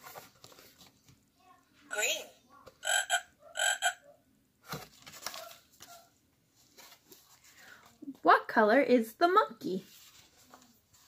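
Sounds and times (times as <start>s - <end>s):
recorded frog croaks: 2.8s - 4.0s.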